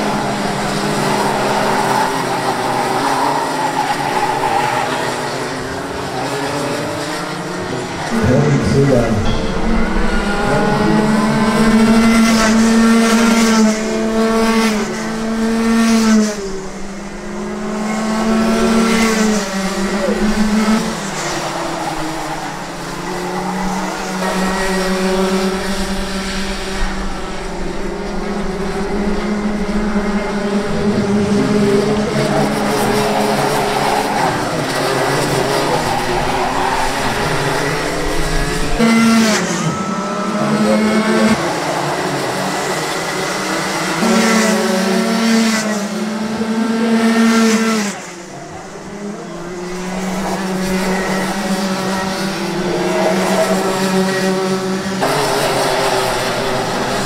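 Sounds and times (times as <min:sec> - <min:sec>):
kart engines revving: 0:00.0 - 0:57.0.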